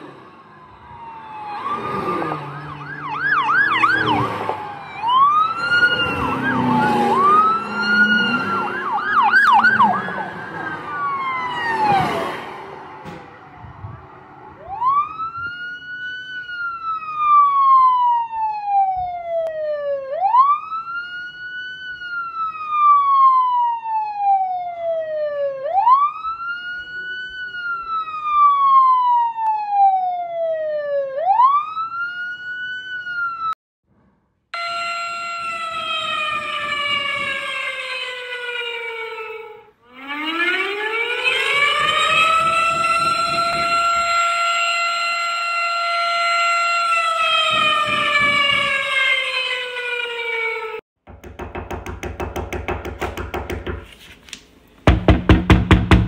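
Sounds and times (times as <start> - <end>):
siren winding up: 0.0 - 17.5, 34.6 - 50.8
siren wailing: 0.0 - 33.6, 34.6 - 50.8.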